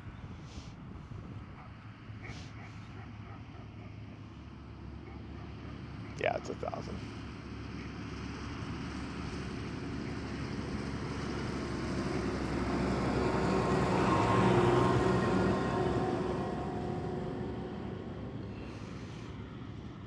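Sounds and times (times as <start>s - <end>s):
tractor driving past: 1.7s - 20.0s.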